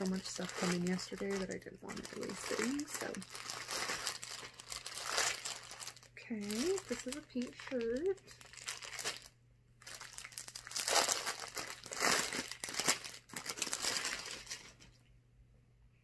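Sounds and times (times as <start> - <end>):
plastic bag crinkling: 0.0 - 15.0.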